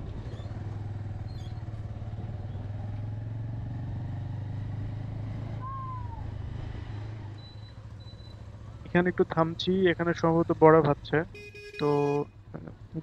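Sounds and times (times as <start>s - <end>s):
motorcycle engine cruising: 0.0s - 13.0s
falling whistle-like tone: 5.6s - 6.3s.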